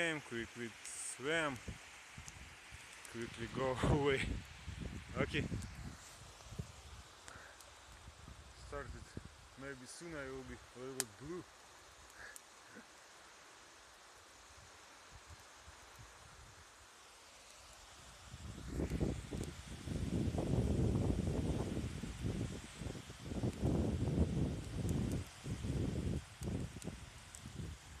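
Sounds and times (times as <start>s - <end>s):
faint shoreline ambience: 0.0s - 19.6s
wind buffeting microphone: 3.3s - 7.0s, 18.4s - 27.8s.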